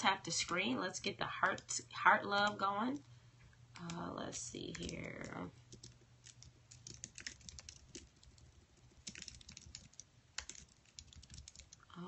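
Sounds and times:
low steady hum: 0.0s - 12.0s
typing on a keyboard: 1.4s - 1.7s, 3.8s - 12.0s.

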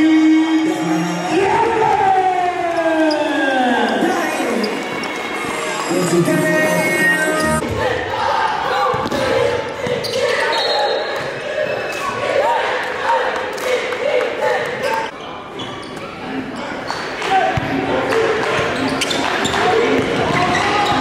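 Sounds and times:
echoing voices: 0.0s - 21.0s.

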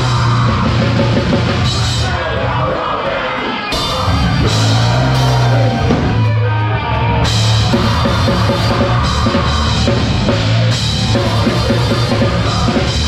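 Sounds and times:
drums pounding: 0.0s - 13.0s
heavy low guitar and bass: 0.0s - 13.0s.

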